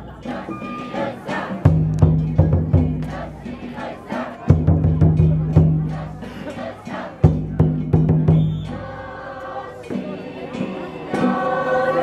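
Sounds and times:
crowd shouting: 0.0 - 1.8, 2.9 - 4.7, 5.8 - 7.4, 8.5 - 12.0.

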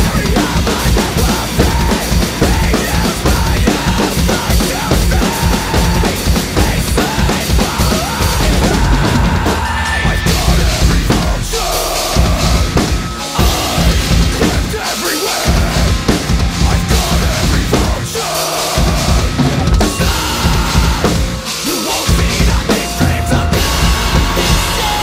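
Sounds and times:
recorded metal song: 0.0 - 25.0.

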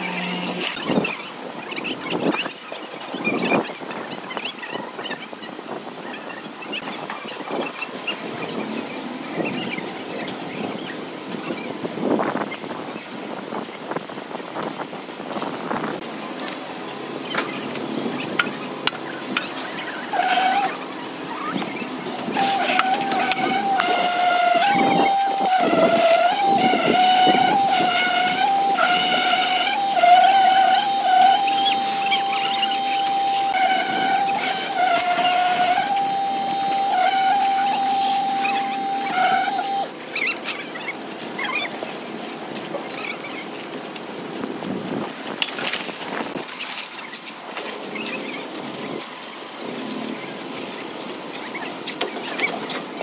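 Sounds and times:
concrete vibrator whine: 22.0 - 39.9.

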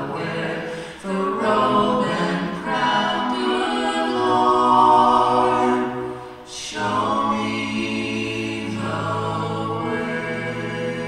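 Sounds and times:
group singing in harmony: 0.0 - 11.0
breath: 0.7 - 1.0.

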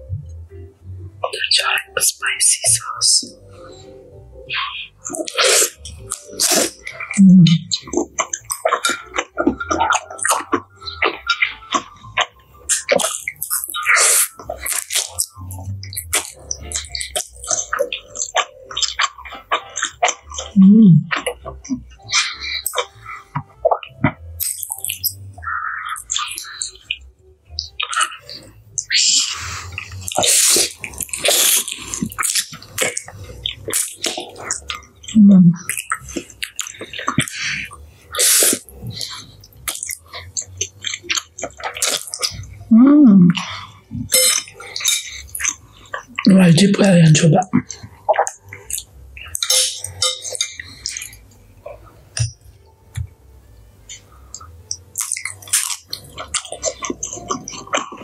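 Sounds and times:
slurping and chewing noodles: 4.5 - 27.0, 27.6 - 42.7, 43.3 - 52.6, 54.0 - 58.0
person humming mm: 20.6 - 21.2, 42.7 - 43.6.

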